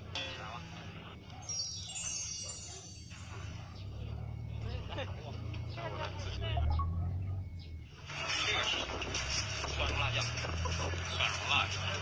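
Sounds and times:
high chime sweep falling in pitch: 1.4 - 3.8.

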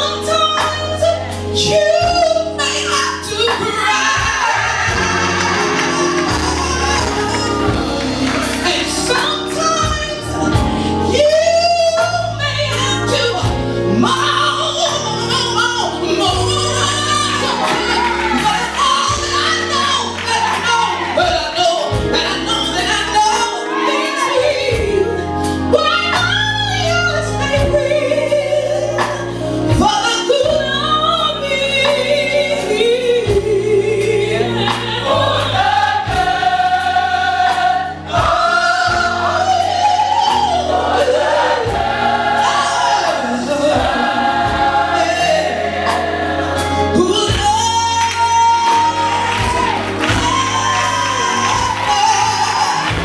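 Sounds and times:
bass line: 0.0 - 23.4, 24.4 - 53.0
choir singing: 3.4 - 9.9, 16.1 - 25.0, 33.7 - 53.0
steady beat: 3.5 - 10.8, 34.7 - 39.5
female lead singer: 46.9 - 53.0.

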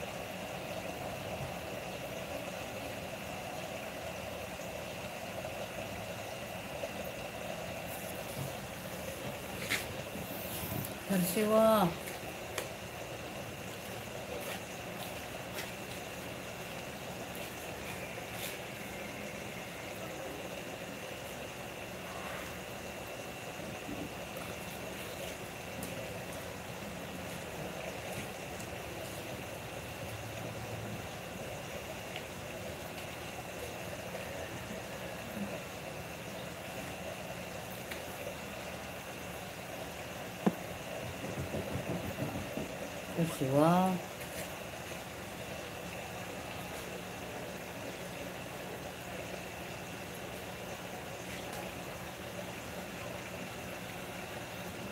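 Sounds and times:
mechanical hum: 0.0 - 54.9.

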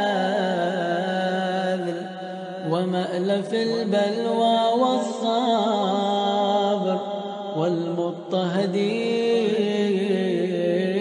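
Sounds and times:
person chanting devotional recitation: 0.0 - 11.0.

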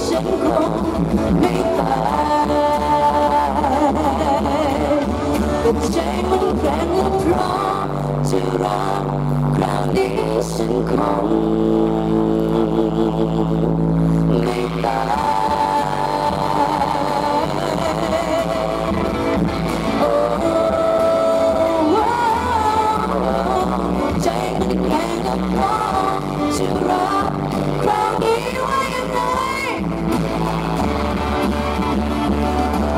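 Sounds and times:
woman singing into microphone: 0.0 - 30.4
live band with drums and bass: 0.0 - 32.9.

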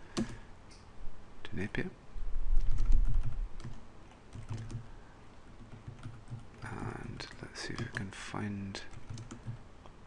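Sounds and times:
keyboard typing: 0.1 - 0.4, 2.6 - 4.9, 5.5 - 8.1, 8.8 - 9.6.

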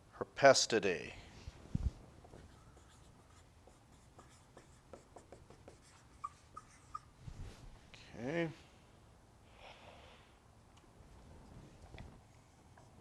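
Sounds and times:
marker scratching on whiteboard: 2.3 - 7.1
marker squeaks: 2.3 - 7.1.

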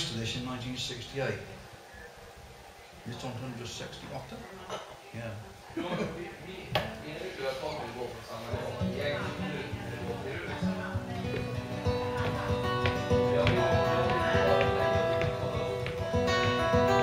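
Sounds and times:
acoustic guitar playing: 8.5 - 17.0.

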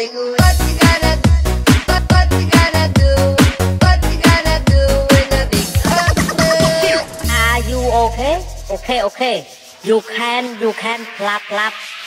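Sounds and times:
person singing short phrases: 1.9 - 9.1.

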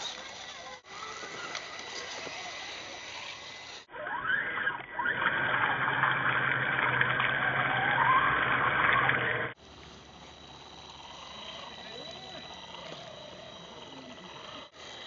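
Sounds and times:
electric motor whine: 0.0 - 15.0.

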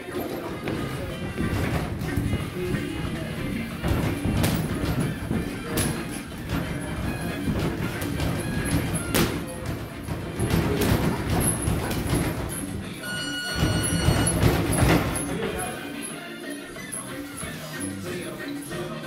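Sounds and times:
shuffling footwork: 0.0 - 16.0
background music: 0.0 - 19.0
boxing gloves knocking: 0.6 - 12.9, 13.6 - 15.3.

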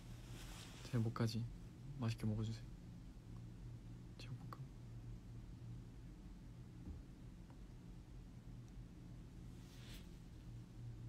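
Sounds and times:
soft breathy hiss: 0.0 - 2.7, 9.3 - 10.8
steady low hum: 0.0 - 11.0.

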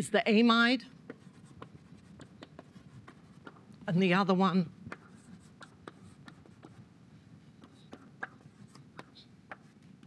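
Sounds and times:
chalk tapping and scratching: 1.0 - 4.2, 4.8 - 10.0.

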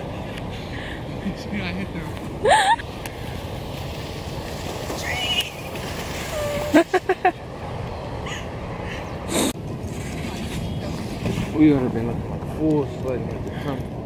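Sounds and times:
person laughing: 2.4 - 2.8, 6.5 - 7.4.

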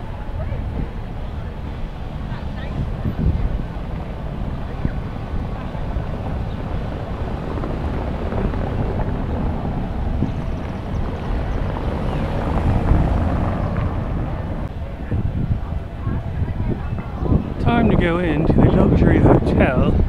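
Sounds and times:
traffic noise: 0.0 - 20.0
wind rumbling on microphone: 0.0 - 20.0.

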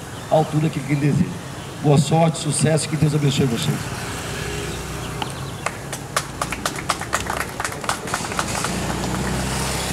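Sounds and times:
scattered applause: 5.6 - 9.9.

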